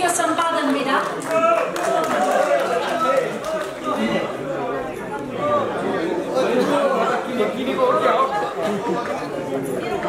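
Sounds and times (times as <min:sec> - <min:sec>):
crowd chatter in echoing hall: 0:00.0 - 0:10.0.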